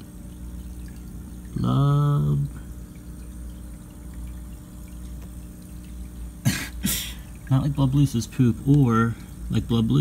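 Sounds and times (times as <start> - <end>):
aquarium equipment humming: 0.0 - 10.0
bubbling water: 0.0 - 10.0.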